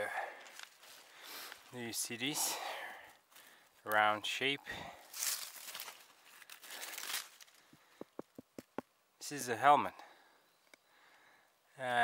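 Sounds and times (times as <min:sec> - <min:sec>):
hand scraping dry leaves and soil: 0:00.4 - 0:02.2, 0:03.0 - 0:08.8.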